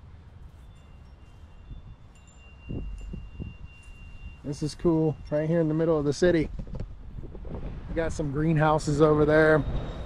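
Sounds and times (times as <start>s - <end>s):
wind chime ringing: 0.4s - 6.1s, 9.4s - 10.0s.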